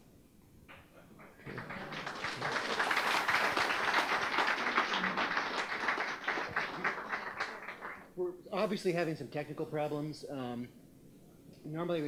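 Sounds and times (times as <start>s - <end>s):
audience applauding: 1.3s - 8.1s.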